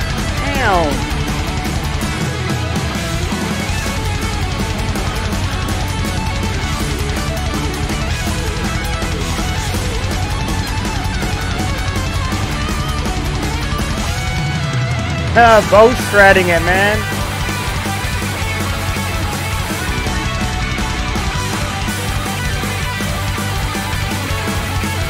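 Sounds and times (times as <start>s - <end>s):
electric guitar lead: 0.0s - 25.0s
live heavy metal band: 0.0s - 25.0s.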